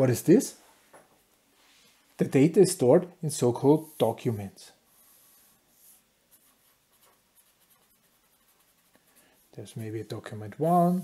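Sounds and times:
felt-tip pen scratching paper: 0:05.8 - 0:09.2.

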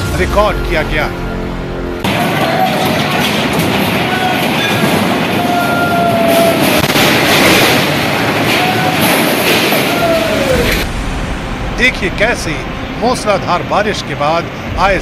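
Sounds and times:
flooded river roaring: 0:02.1 - 0:15.0.

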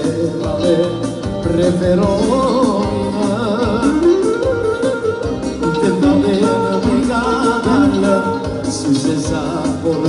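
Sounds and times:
man singing with band: 0:00.0 - 0:10.0.

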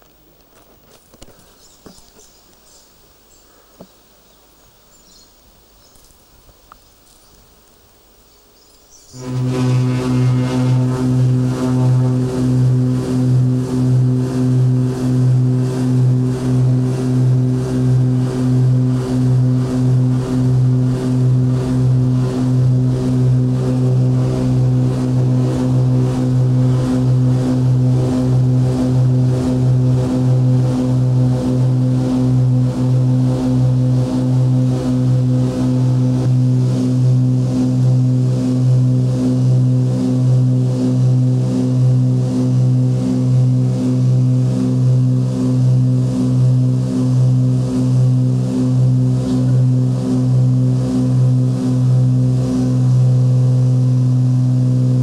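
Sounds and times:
propeller aircraft engines droning: 0:08.8 - 0:55.0.

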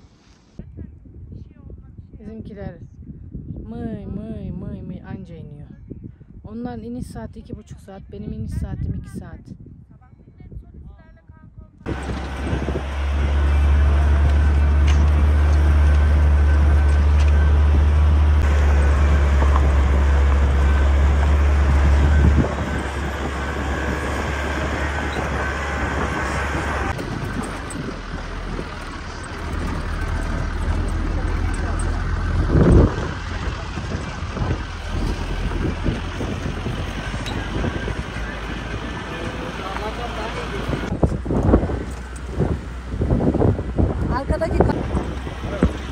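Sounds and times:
wind rumble on microphone: 0:00.0 - 0:45.9
car road and engine noise: 0:11.8 - 0:45.9.

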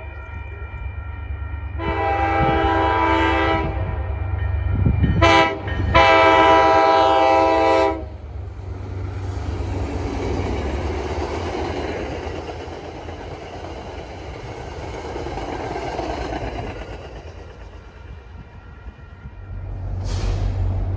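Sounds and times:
train wheels on rail: 0:00.0 - 0:20.9
train horn blasts: 0:01.7 - 0:04.1, 0:04.8 - 0:08.2.

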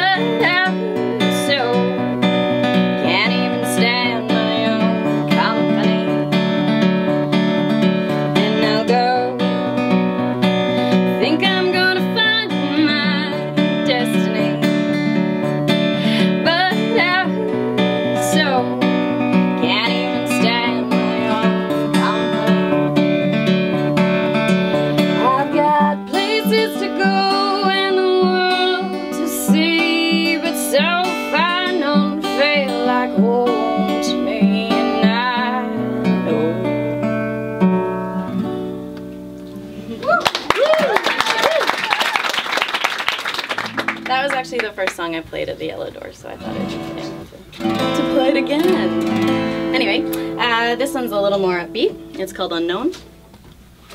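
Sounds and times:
woman singing with vibrato: 0:00.0 - 0:02.3, 0:02.9 - 0:06.2, 0:08.2 - 0:10.4, 0:11.1 - 0:15.0, 0:15.9 - 0:22.9, 0:25.2 - 0:36.9, 0:46.4 - 0:52.2
acoustic guitar strumming: 0:00.0 - 0:39.9, 0:43.0 - 0:53.9.

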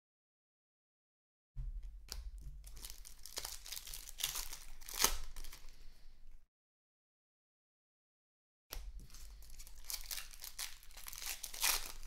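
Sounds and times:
foil wrapper tearing and crinkling: 0:02.6 - 0:05.8, 0:09.0 - 0:12.0.

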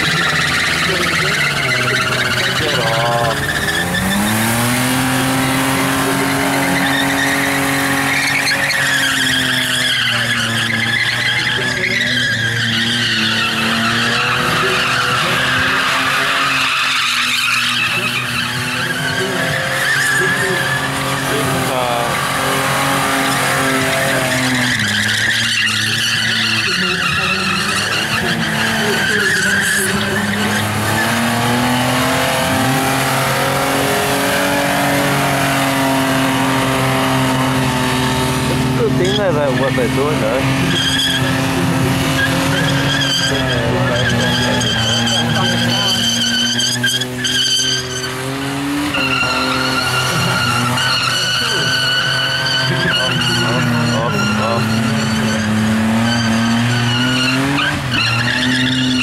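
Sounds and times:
car engine at high revs: 0:00.0 - 0:59.0
tyres squealing on pavement: 0:00.0 - 0:59.0.

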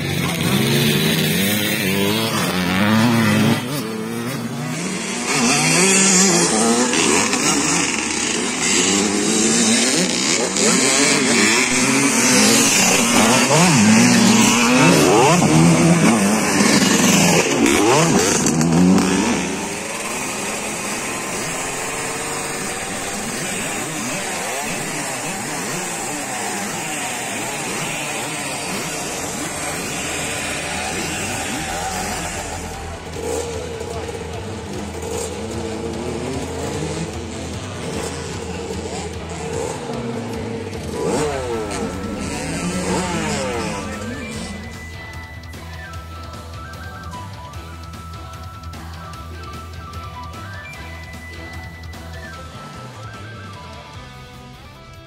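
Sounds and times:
motocross bike engines revving: 0:00.0 - 0:55.0
voices: 0:00.0 - 0:55.0.

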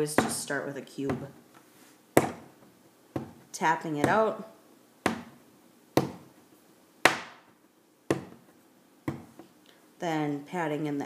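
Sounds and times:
clay knocking on wooden tabletop: 0:08.1 - 0:09.5.

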